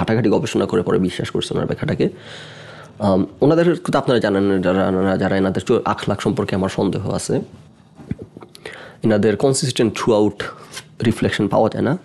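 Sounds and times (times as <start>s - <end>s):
man speaking: 0.0s - 2.2s, 3.0s - 7.7s, 9.0s - 12.0s.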